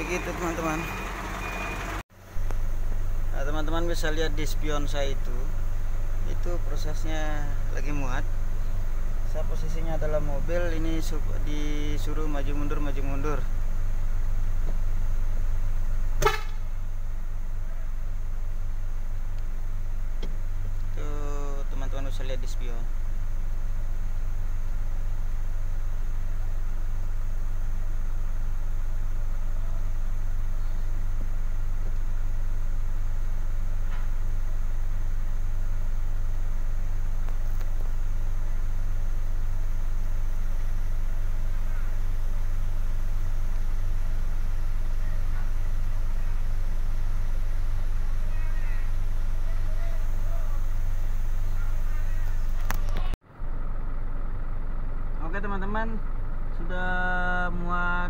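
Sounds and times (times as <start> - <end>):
diesel truck engine idling: 0.0 - 58.0
faint voices: 48.1 - 50.8, 51.4 - 53.2.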